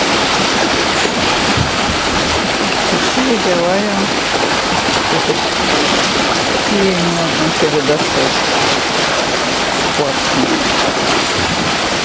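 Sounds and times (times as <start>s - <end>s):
water pouring over weir: 0.0s - 12.0s.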